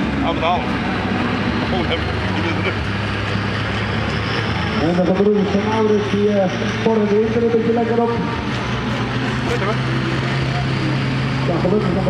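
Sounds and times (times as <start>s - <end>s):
man speaking over loudspeaker: 4.7s - 8.5s, 11.4s - 12.0s.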